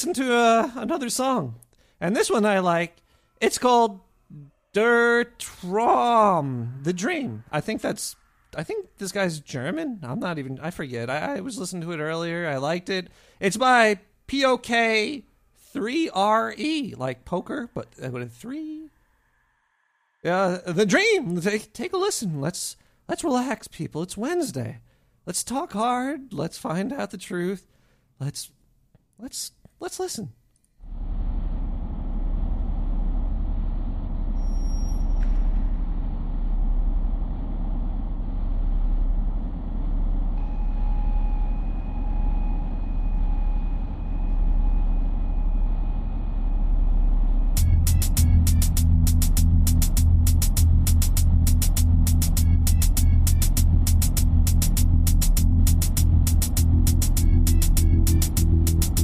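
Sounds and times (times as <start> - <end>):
low droning music: 35.2 - 59.0
steady beat with heavy bass: 47.6 - 59.0.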